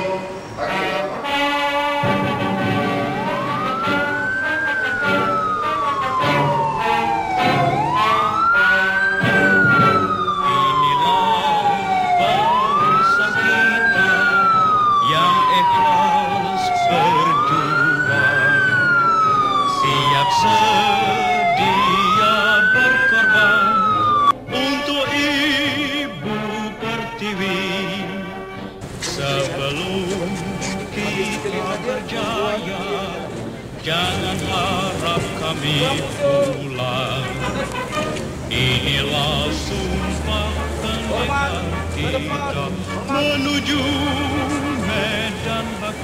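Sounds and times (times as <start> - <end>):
police siren wailing: 0.0 - 25.9, 28.9 - 46.0.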